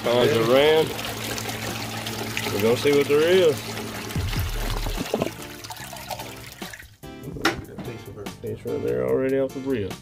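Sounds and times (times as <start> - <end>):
water running through sluice box: 0.0 - 7.0.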